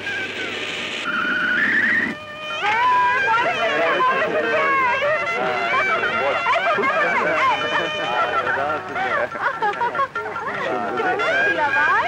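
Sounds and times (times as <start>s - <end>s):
crowd talking and calling out: 2.4s - 12.0s.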